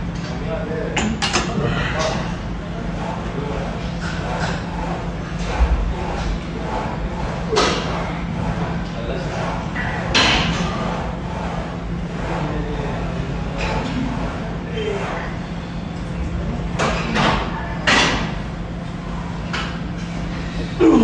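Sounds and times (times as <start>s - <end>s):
row machine noisy bursts: 1.5s - 15.8s.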